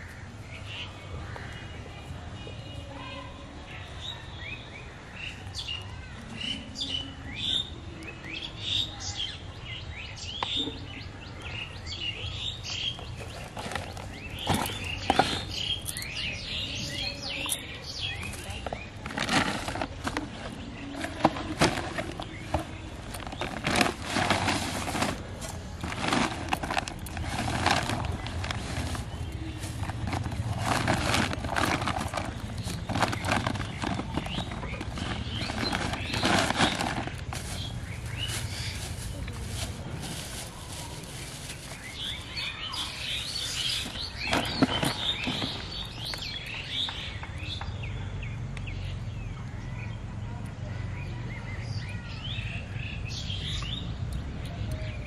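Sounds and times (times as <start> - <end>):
birds chirping: 0.0 - 55.0
plastic bags crinkling: 13.0 - 16.3, 18.2 - 46.4.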